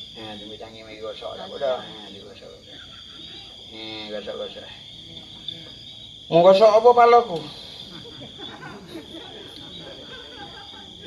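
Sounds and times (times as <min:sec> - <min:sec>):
crickets chirring: 0:00.0 - 0:11.0
faint voices murmuring: 0:00.0 - 0:11.0.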